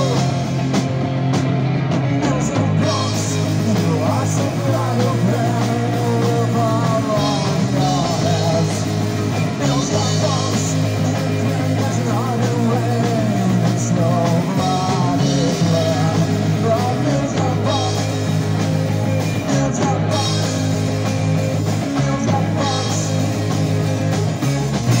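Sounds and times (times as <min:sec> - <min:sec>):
man singing: 0:00.0 - 0:00.6, 0:02.0 - 0:24.1
punk rock band playing: 0:00.0 - 0:25.0.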